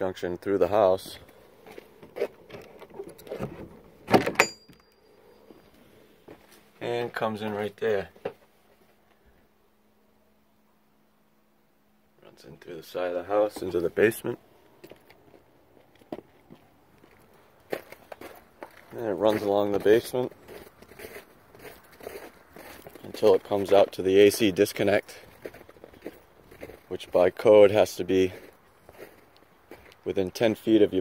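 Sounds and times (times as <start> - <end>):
door clatter: 2.5 - 4.8
thin metallic ring: 4.4 - 5.5
footsteps crunching on snow: 14.8 - 30.1.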